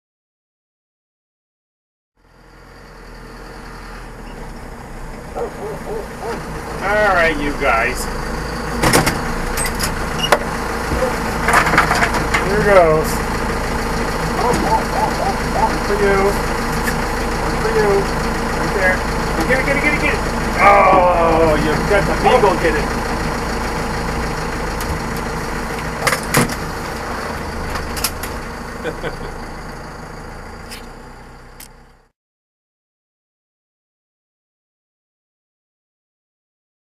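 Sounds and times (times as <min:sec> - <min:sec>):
truck engine idling: 0:02.2 - 0:32.1
high-pitched calls: 0:14.4 - 0:15.9.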